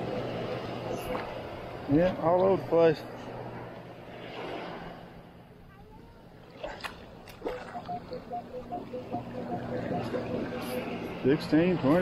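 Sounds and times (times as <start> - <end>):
surf wash: 0.0 - 12.0
metal detector beeps: 7.6 - 11.2.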